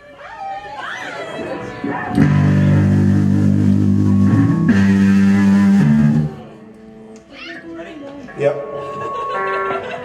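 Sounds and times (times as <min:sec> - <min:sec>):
electric guitars ringing chords: 0:01.8 - 0:07.2.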